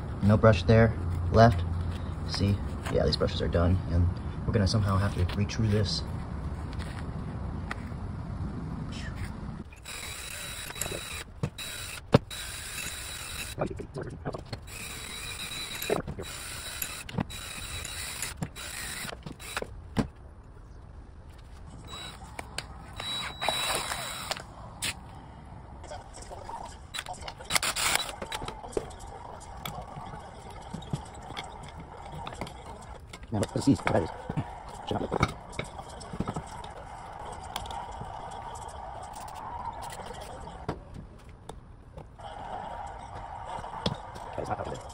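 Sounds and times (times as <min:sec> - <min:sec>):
metal parts clicking and scraping: 0:14.4 - 0:19.7.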